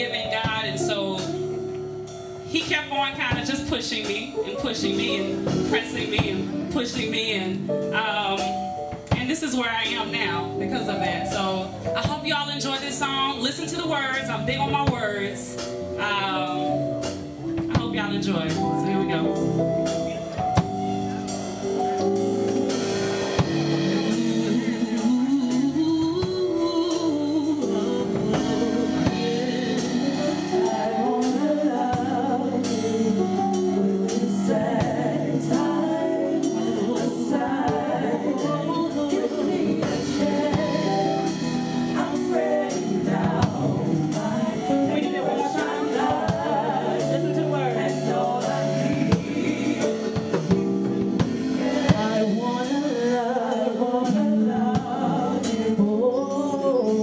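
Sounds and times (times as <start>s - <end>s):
woman singing gospel: 0.0s - 1.7s, 2.5s - 19.6s, 23.3s - 57.0s
drum kit beat: 0.0s - 57.0s.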